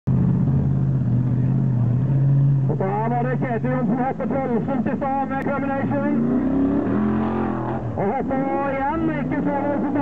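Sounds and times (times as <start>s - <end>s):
buggy engine at high revs: 0.1s - 10.0s.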